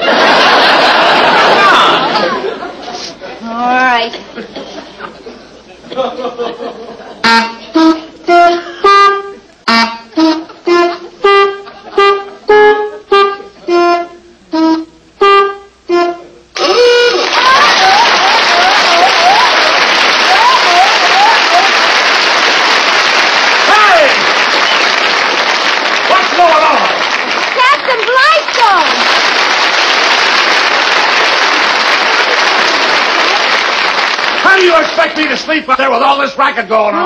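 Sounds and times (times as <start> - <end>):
audience laughter and applause: 0.0 - 3.4, 4.2 - 7.2, 16.6 - 35.3
rubber-bulb horns honking a tune: 7.2 - 21.8.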